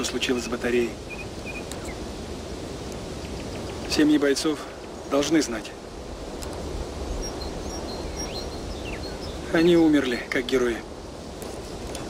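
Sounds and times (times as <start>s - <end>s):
faint bird chirps: 1.0s - 2.1s, 3.1s - 5.3s, 7.0s - 10.2s.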